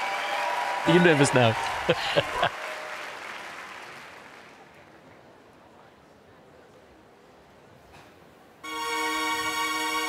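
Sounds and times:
audience applause: 0:00.0 - 0:05.1
short laugh: 0:01.8 - 0:02.5.

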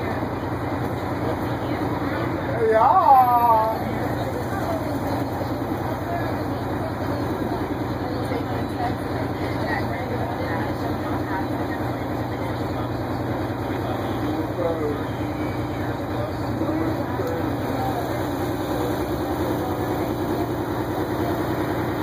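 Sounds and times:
bus diesel engine idling: 0:00.0 - 0:22.0
faint passenger voices: 0:00.0 - 0:22.0.

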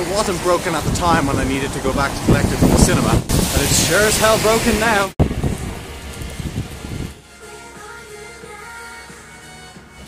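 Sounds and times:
wind buffeting microphone: 0:00.0 - 0:07.2
rain: 0:00.0 - 0:07.8.

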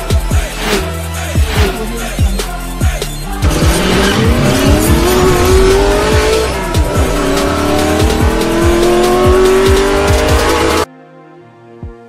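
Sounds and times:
electronic music with kick drum: 0:00.0 - 0:10.9
car engine revving: 0:03.3 - 0:10.9.

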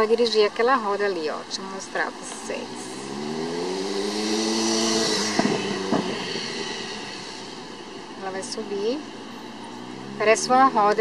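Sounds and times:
vehicle engine hum passing: 0:00.0 - 0:11.0.

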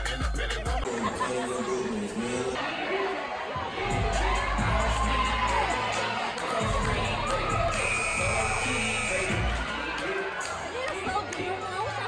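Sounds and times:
music with bass beat: 0:00.0 - 0:00.9, 0:03.8 - 0:06.0, 0:06.6 - 0:10.0
crowd cheering and shouting: 0:00.0 - 0:12.0.

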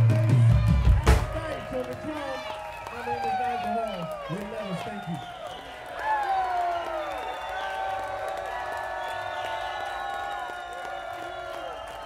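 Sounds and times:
voices shouting and whooping: 0:00.6 - 0:12.0.

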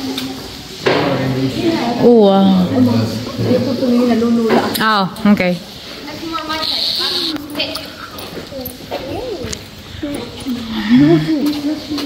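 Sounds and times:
indistinct voices talking: 0:04.8 - 0:11.8.

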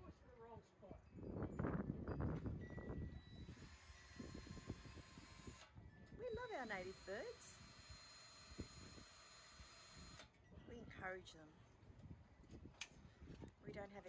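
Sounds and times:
wind buffeting microphone: 0:01.0 - 0:07.0, 0:07.6 - 0:14.0.

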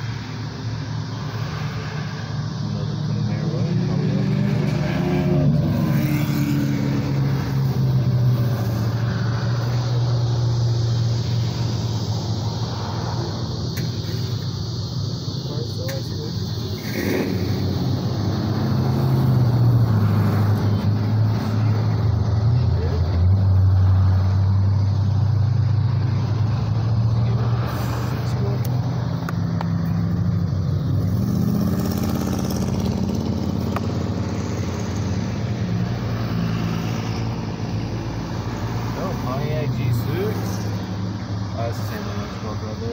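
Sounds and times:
traffic driving past: 0:00.0 - 0:42.9.

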